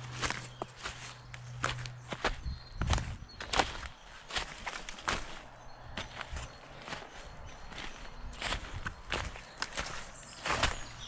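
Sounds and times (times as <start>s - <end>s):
footsteps on dry leaves: 0.0s - 11.0s.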